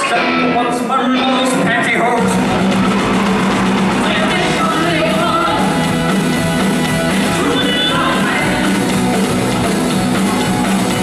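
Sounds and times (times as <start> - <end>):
live rock band playing: 0.0 - 11.0.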